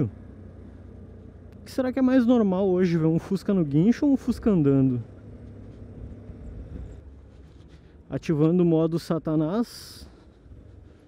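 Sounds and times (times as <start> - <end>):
motorcycle engine rumble: 0.0 - 11.0
wind noise: 5.6 - 7.9.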